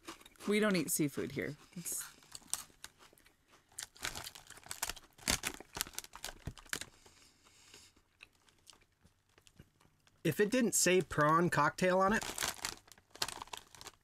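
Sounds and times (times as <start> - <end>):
crisps crunching: 0.0 - 7.0, 8.1 - 10.2, 12.1 - 14.0
foil bag crinkling: 3.8 - 6.9, 12.1 - 14.0.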